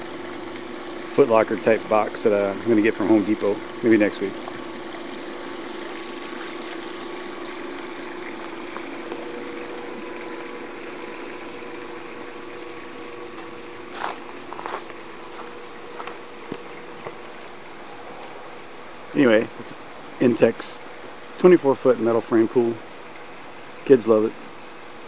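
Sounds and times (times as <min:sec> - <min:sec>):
circulating water rushing: 0:00.0 - 0:25.0
pool pump humming: 0:00.0 - 0:25.0.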